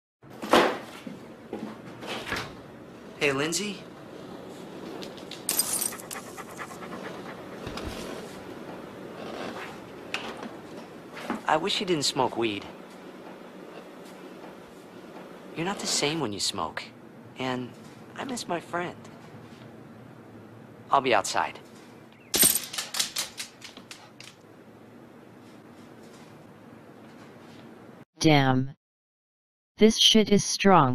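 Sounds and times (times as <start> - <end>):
dog panting: 5.8 - 8.5
dog claws clicking on hard floor: 22.6 - 24.4.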